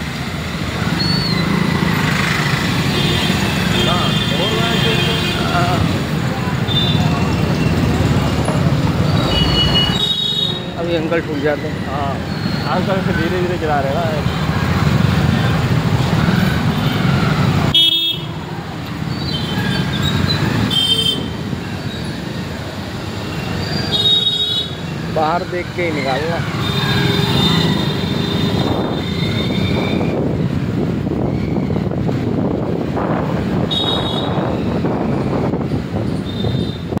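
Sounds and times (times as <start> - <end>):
road noise: 0.0 - 37.0
wind on microphone: 28.1 - 37.0.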